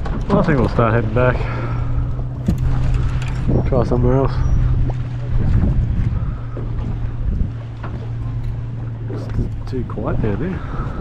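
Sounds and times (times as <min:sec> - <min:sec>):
boat motor humming: 0:00.0 - 0:11.0
wind buffeting microphone: 0:00.0 - 0:11.0.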